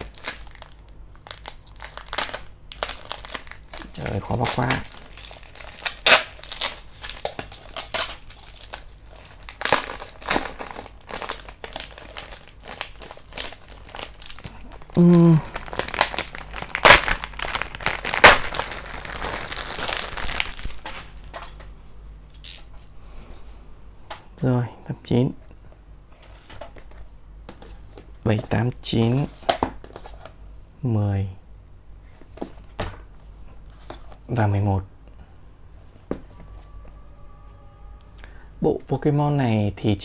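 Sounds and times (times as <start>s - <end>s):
plastic wrapping crinkling: 0.0s - 21.4s.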